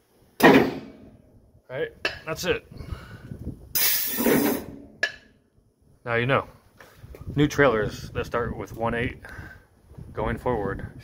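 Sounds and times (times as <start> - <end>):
compressed air hissing: 3.8 - 4.8.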